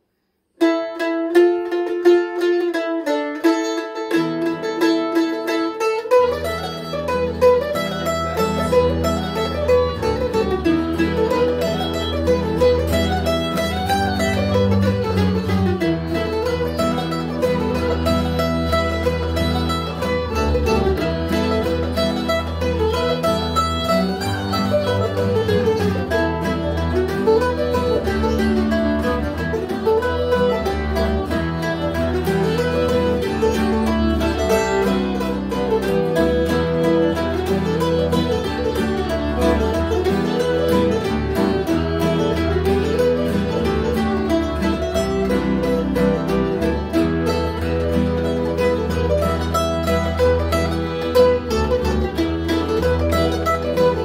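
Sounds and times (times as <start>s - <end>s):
mandolin: 0.0s - 54.0s
acoustic string band playing: 0.6s - 54.0s.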